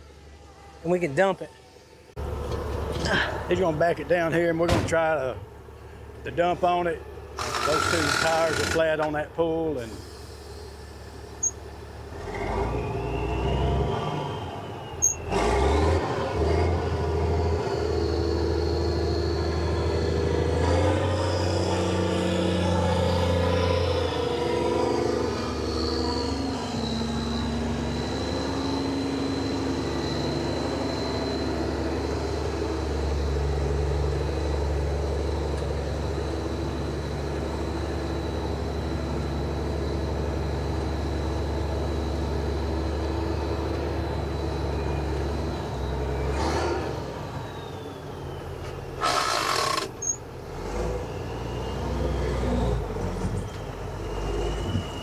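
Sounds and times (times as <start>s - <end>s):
truck diesel engine running: 0.0s - 13.2s, 14.6s - 55.0s
thin high whine: 17.9s - 46.4s.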